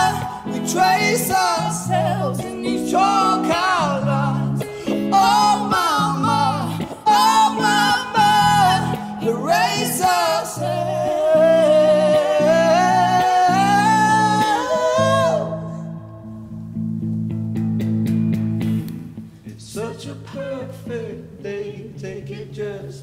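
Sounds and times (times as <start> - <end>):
woman singing with vibrato: 0.0 - 16.1
strummed electric guitar chords: 0.0 - 21.2.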